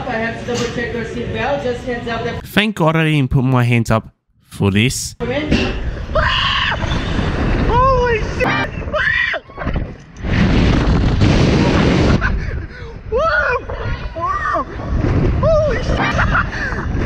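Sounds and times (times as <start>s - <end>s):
wind rushing over microphone: 6.8s - 17.0s.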